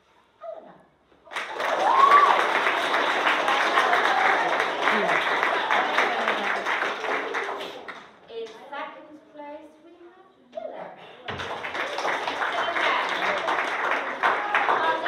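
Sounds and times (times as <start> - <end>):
people clapping and cheering: 1.2 - 8.6, 11.2 - 15.0.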